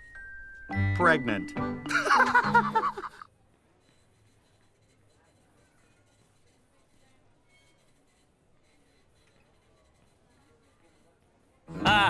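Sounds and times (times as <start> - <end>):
man laughing: 1.9 - 3.2, 11.8 - 12.0.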